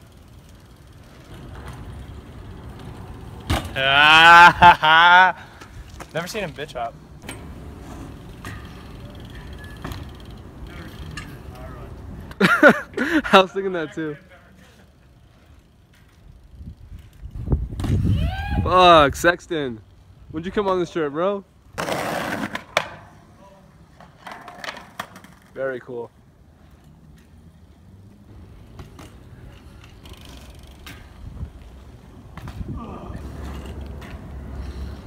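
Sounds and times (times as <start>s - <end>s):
bike tyres rumbling on pavement: 0.0s - 13.2s, 14.0s - 21.0s, 21.6s - 35.0s.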